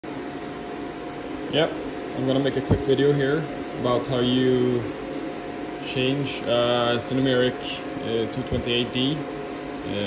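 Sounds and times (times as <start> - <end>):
ventilation fan hum: 0.0 - 10.0.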